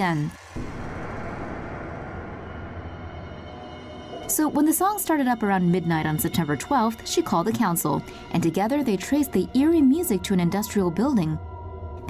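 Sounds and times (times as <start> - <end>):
low rumbling drone: 0.4 - 12.0.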